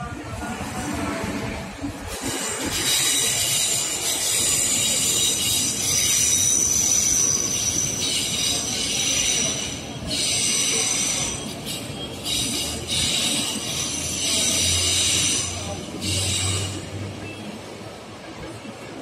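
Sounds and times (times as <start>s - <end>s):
train rumbling: 0.0s - 19.0s
train wheels squealing: 2.0s - 17.9s.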